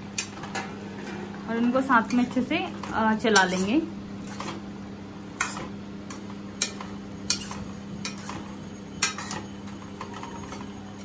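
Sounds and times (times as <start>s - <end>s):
steady low hum: 0.0s - 11.0s
metal spatula scraping pan: 3.2s - 4.5s, 6.6s - 8.4s.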